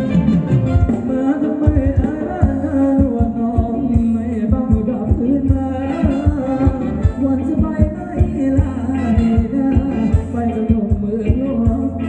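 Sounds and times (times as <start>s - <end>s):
live band dance music: 0.0s - 12.0s
steady low drum beat: 0.0s - 12.0s.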